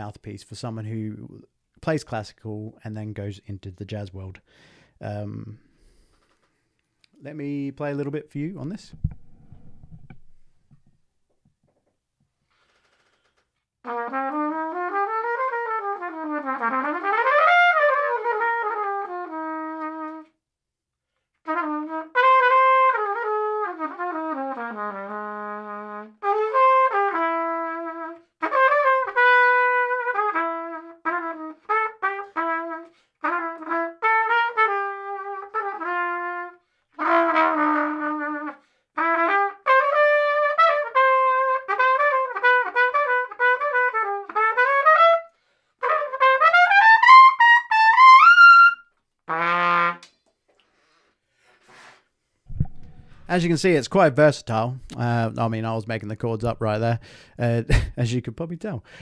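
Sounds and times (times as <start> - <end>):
jazzy solo trumpet: 13.8 - 20.4, 21.4 - 50.1.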